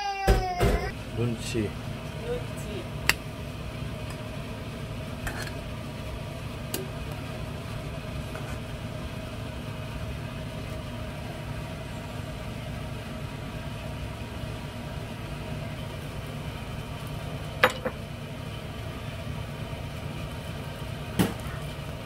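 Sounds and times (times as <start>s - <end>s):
gas burner flame: 0.2s - 22.0s
soup boiling and bubbling: 2.8s - 22.0s.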